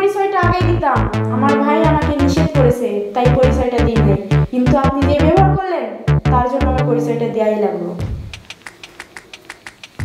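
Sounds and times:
rapid light clicks: 8.3s - 10.0s.

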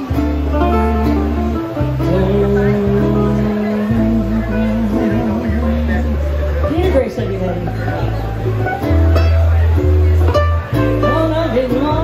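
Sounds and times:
deep bass ukulele notes: 0.0s - 12.0s
strummed ukuleles and guitar: 0.0s - 12.0s.

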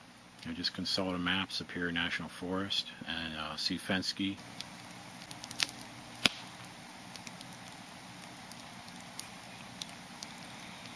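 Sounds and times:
campfire crackling and popping: 4.4s - 10.9s.

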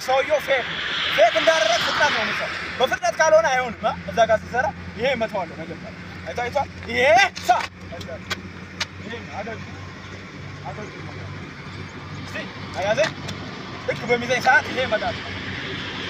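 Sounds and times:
low hum of road traffic: 0.0s - 16.0s
sharp smacks: 7.3s - 9.0s.

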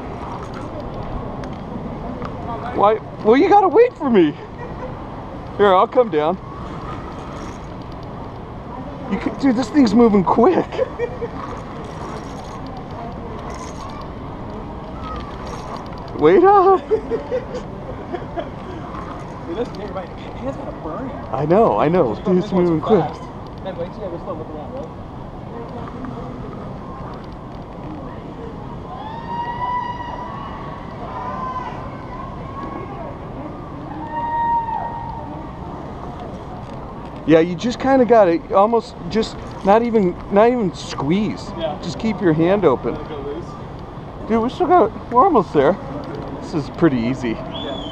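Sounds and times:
faint voices: 0.0s - 47.9s.

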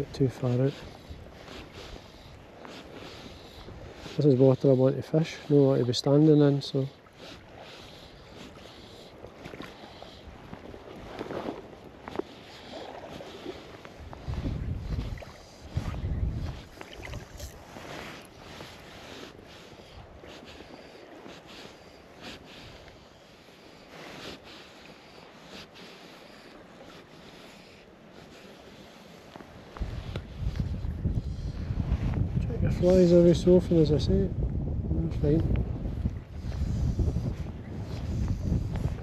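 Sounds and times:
wind buffeting microphone: 0.0s - 5.9s, 9.2s - 21.2s, 29.5s - 39.0s
small waves lapping: 0.0s - 33.8s
wind blowing over water: 0.0s - 39.0s.

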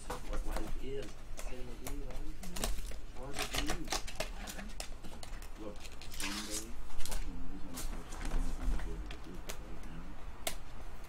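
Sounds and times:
trading cards rustling: 0.0s - 10.0s.

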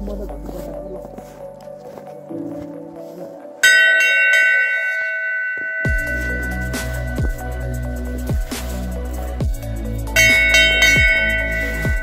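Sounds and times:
brass bell ringing: 3.6s - 9.2s, 10.1s - 12.0s.

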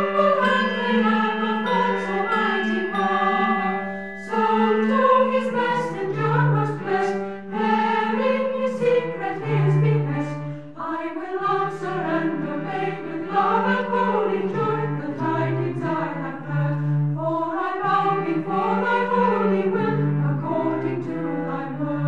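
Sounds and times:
choir singing sacred piece: 0.0s - 22.0s.

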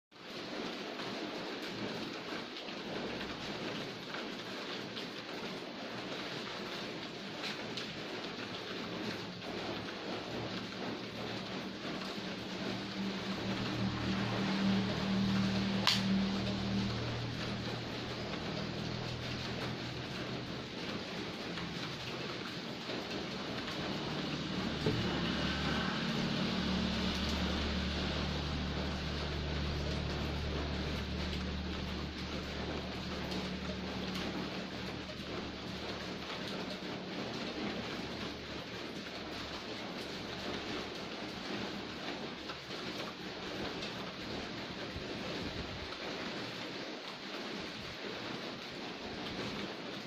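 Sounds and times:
rain hissing: 0.1s - 50.0s
low humming rumble: 9.8s - 37.5s.

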